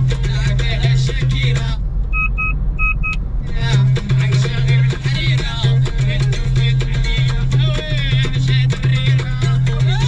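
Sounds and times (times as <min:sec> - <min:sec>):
music: 0:00.0 - 0:01.8, 0:03.4 - 0:10.0
car road and engine rumble: 0:00.0 - 0:10.0
short electronic beeps: 0:02.1 - 0:03.2.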